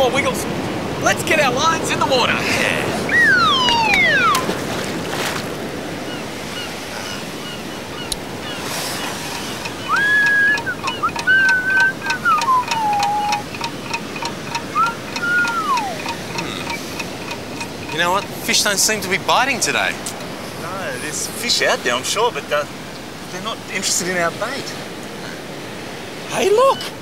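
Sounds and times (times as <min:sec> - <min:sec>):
surf washing on beach: 0:00.0 - 0:27.0
high whistled notes: 0:03.1 - 0:04.6, 0:08.9 - 0:18.0.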